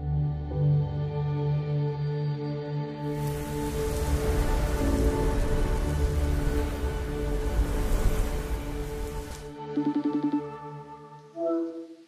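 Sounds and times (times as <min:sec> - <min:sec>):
ambient music with held tones: 0:00.0 - 0:12.0
rain-like hiss and crackle: 0:03.1 - 0:09.6
low rumble: 0:03.2 - 0:09.5.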